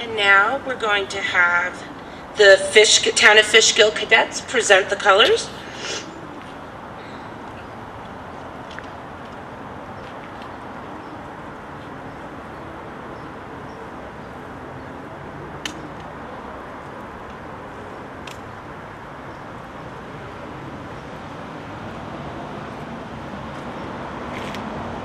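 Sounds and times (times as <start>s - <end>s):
outdoor background noise: 0.0s - 25.0s.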